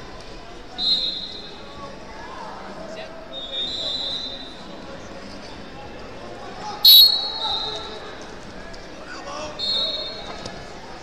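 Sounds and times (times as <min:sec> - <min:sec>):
spectators talking in a hall: 0:00.0 - 0:11.0
referee's whistle blasts: 0:00.8 - 0:01.5, 0:06.8 - 0:08.0, 0:09.6 - 0:10.2.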